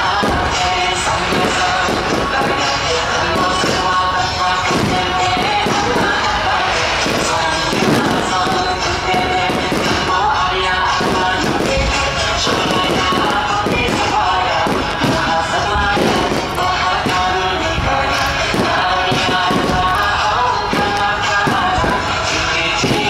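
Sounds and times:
fireworks bursting and crackling: 0.0 - 23.0
loud music: 0.0 - 23.0.

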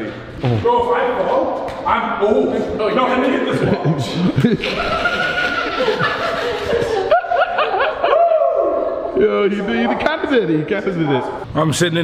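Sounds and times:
people laughing: 3.3 - 9.9.

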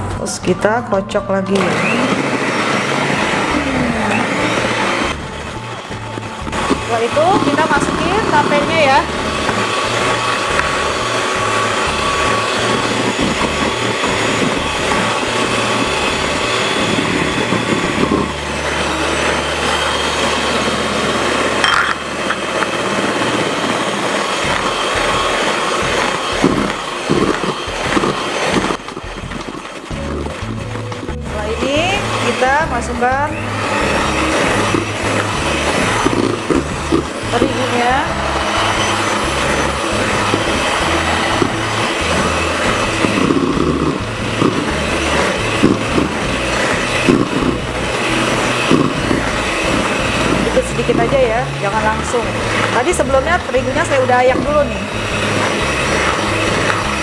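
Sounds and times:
electric hand mixer whirring: 0.0 - 57.0.

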